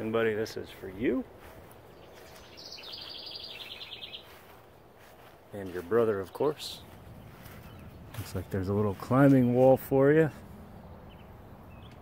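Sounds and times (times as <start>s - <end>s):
faint outdoor background noise: 0.0s - 12.0s
songbird trilling: 1.9s - 4.6s, 6.5s - 8.2s.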